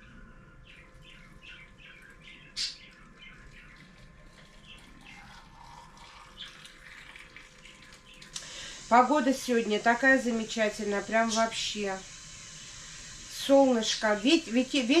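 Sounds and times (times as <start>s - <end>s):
water trickling into glass jar: 3.2s - 8.4s.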